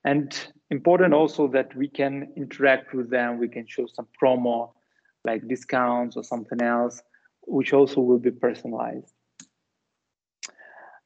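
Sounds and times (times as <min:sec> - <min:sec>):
person speaking: 0:00.0 - 0:04.7, 0:05.3 - 0:09.0
faint breath: 0:10.5 - 0:11.0.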